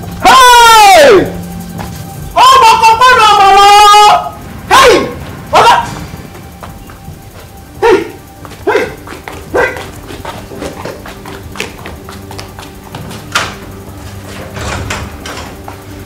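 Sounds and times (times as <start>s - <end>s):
film score music: 0.0s - 16.0s
loud cries falling in pitch: 0.2s - 1.4s, 2.4s - 6.0s.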